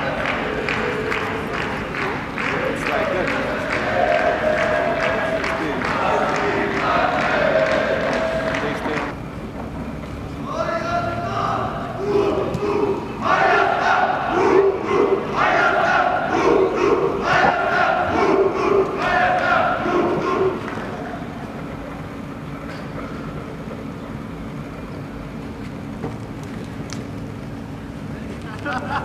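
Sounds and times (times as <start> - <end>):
men shouting chant-like calls: 0.0 - 9.1, 10.6 - 21.3.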